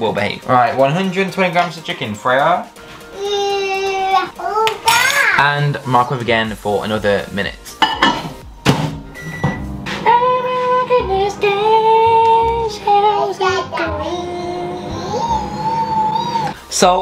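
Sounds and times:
microwave oven humming: 13.8s - 16.5s.

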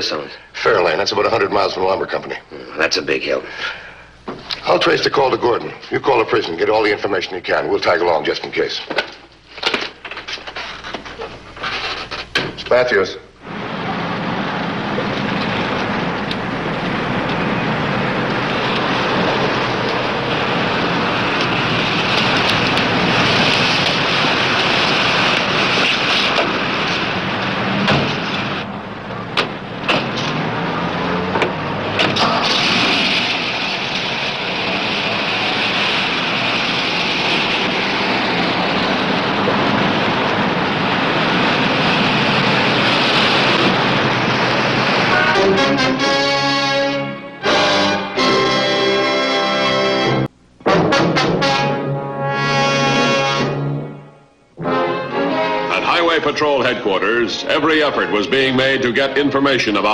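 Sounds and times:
road noise: 8.4s - 59.9s
car engine running: 13.5s - 45.1s
car door opening and shutting: 29.2s - 30.5s, 31.3s - 32.8s.

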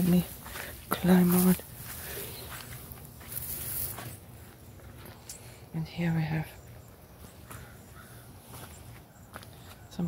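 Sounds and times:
rustling: 0.0s - 4.2s
footsteps on dry mulch: 0.0s - 10.0s.

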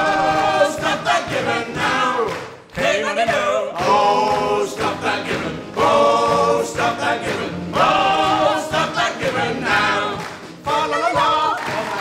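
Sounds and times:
mixed voices singing in harmony: 0.0s - 12.0s.

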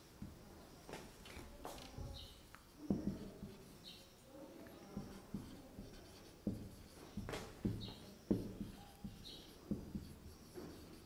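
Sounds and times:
marker pen scratching on whiteboard: 1.0s - 11.0s
soft pen taps: 1.3s - 3.6s, 4.6s - 10.8s.

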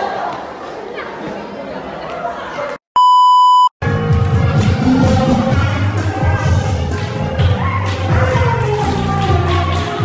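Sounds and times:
electronic beep: 3.0s - 3.7s
music: 3.8s - 10.0s.

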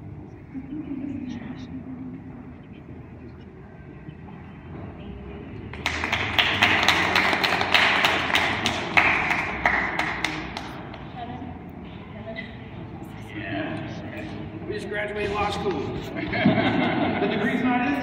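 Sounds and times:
low room chatter: 0.0s - 18.0s
small crowd applauding: 5.7s - 11.2s.

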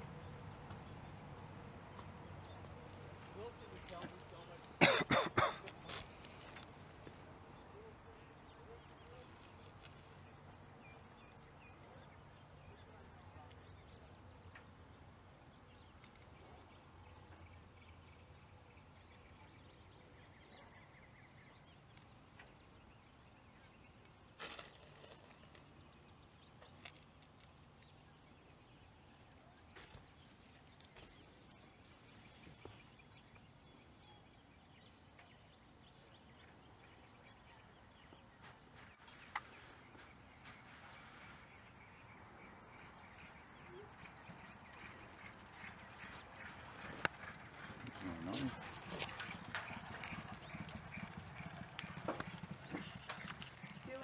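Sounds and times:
horse hoofbeats on dirt: 43.1s - 54.0s.

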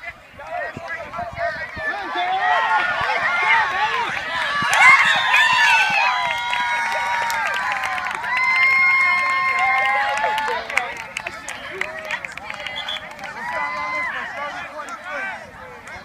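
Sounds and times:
women yelling and cheering: 1.9s - 10.6s.

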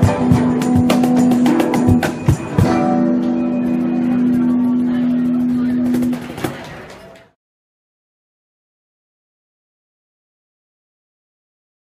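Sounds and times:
electric guitar: 0.0s - 6.8s.

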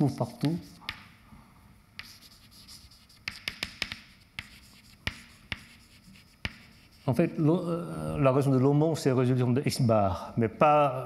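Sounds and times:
chalk writing on a blackboard: 0.0s - 1.2s, 2.0s - 7.4s.

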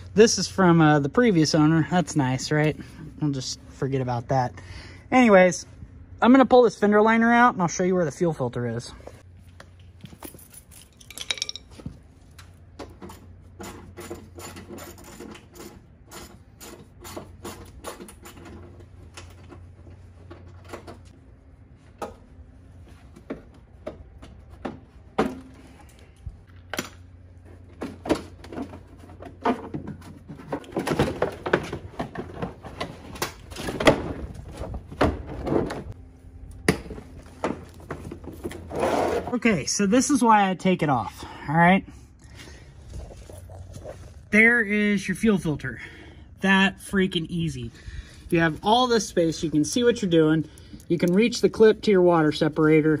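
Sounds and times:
plastic scraping and rattling: 27.6s - 36.0s.

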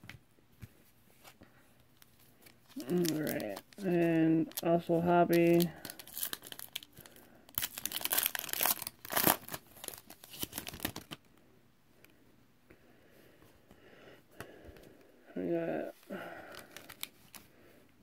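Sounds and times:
foil wrapper tearing and crinkling: 2.6s - 4.7s, 5.3s - 11.2s, 16.5s - 17.4s.

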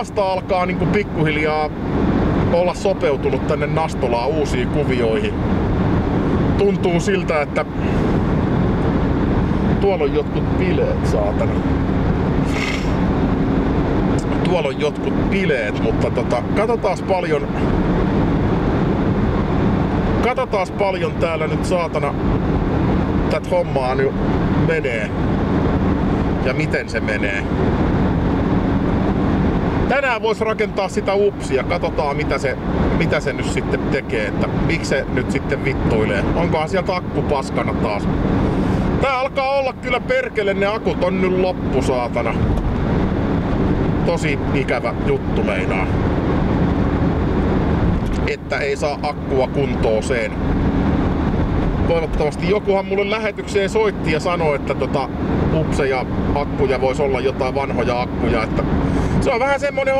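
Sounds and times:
car interior engine and road drone: 0.0s - 59.9s.

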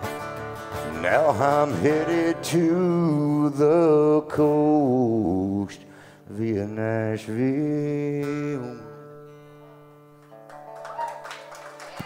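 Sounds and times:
acoustic guitar chords ringing: 0.0s - 10.7s.

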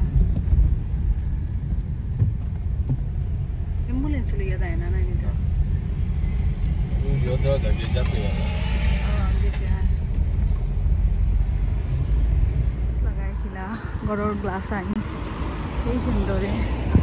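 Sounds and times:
car engine and tyres rumble: 0.0s - 17.0s.

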